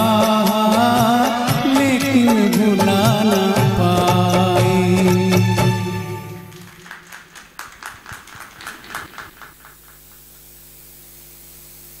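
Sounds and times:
backing music: 0:00.0 - 0:09.5
audience clapping sparsely: 0:06.2 - 0:10.6.

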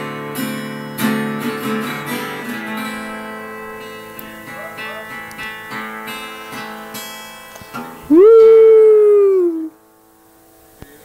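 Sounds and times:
dog howling: 0:04.5 - 0:05.2, 0:08.1 - 0:09.7.

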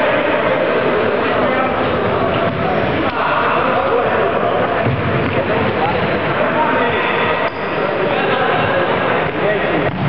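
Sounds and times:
babble of many voices: 0:00.0 - 0:10.0.

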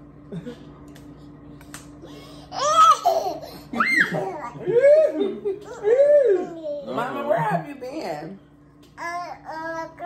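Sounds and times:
toddler laughing: 0:02.5 - 0:06.8.

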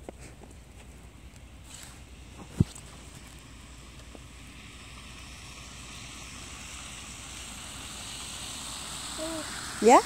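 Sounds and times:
low rumble with hiss: 0:00.0 - 0:10.0.

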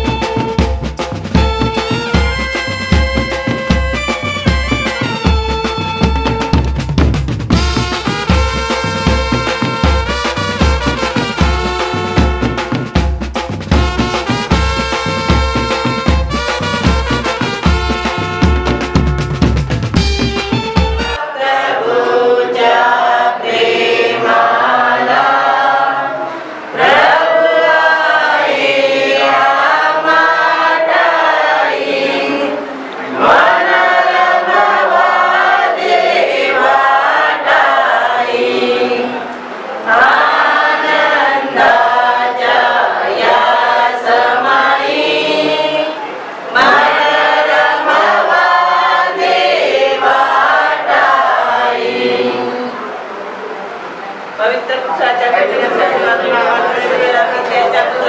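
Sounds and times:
crowd singing unaccompanied: 0:00.0 - 0:06.9, 0:20.6 - 0:58.0.

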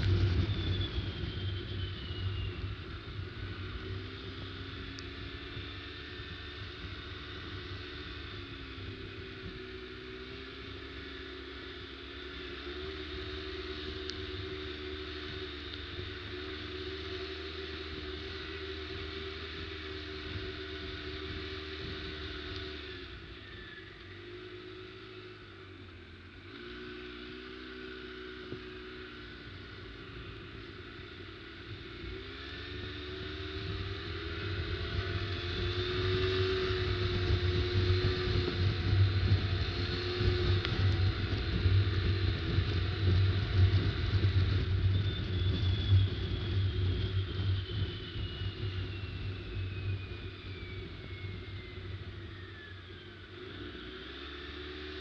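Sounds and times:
high whine sliding down: 0:00.0 - 0:09.6, 0:12.4 - 0:55.0
atv engine running: 0:00.0 - 0:55.0.

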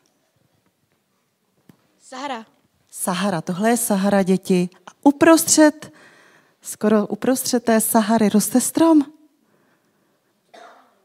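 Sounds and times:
woman speaking: 0:02.0 - 0:05.9, 0:06.6 - 0:09.3
faint short cough: 0:10.5 - 0:11.0.

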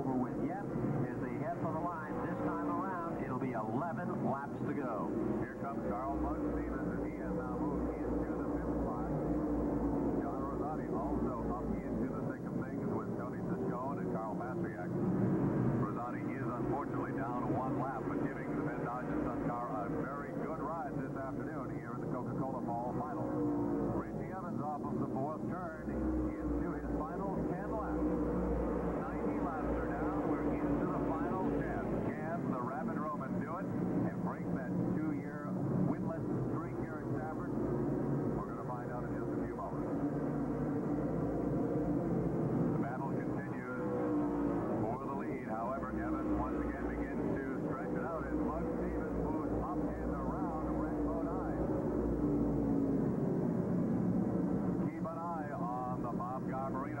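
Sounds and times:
voices: 0:00.0 - 0:53.4, 0:54.2 - 0:57.0
race car engines passing: 0:00.0 - 0:57.0.

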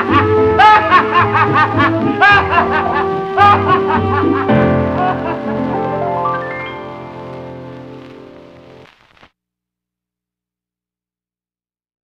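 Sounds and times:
orchestra playing a bolero on a record: 0:00.0 - 0:08.9.

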